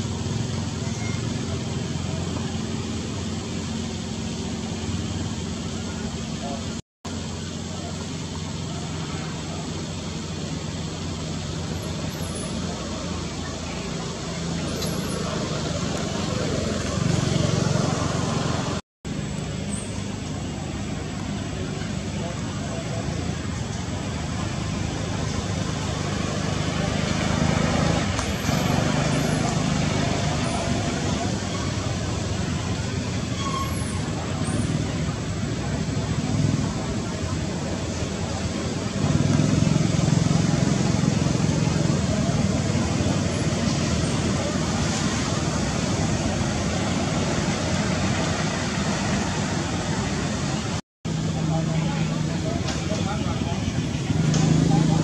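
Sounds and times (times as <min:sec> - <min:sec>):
road traffic: 0:00.0 - 0:55.0.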